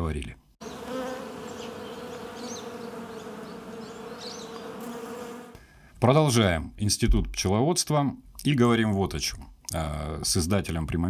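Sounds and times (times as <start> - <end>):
bees buzzing: 0.6 - 5.6.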